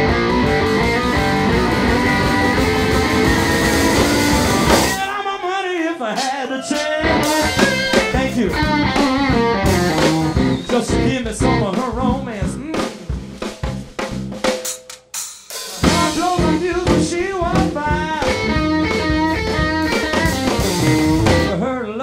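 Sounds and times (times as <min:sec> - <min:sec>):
bent electric guitar lead notes: 0:00.0 - 0:05.1, 0:07.0 - 0:12.7, 0:15.8 - 0:21.6
blues band playing: 0:00.0 - 0:21.7.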